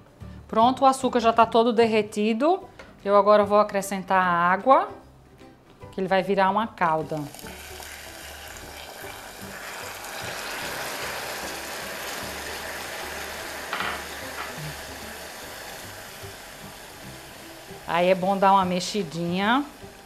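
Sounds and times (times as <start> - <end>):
caramel sizzling in saucepan: 6.9 - 20.0
water pouring: 7.2 - 15.9.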